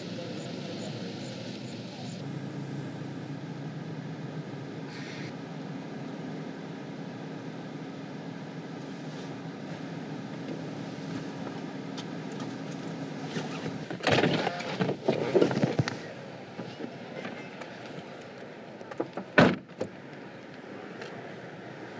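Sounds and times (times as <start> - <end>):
car engine idling: 0.0 - 14.0.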